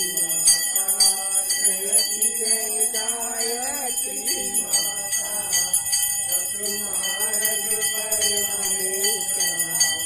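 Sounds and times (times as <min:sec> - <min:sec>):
hand bell ringing rapidly: 0:00.0 - 0:10.0
voice chanting: 0:00.0 - 0:10.0.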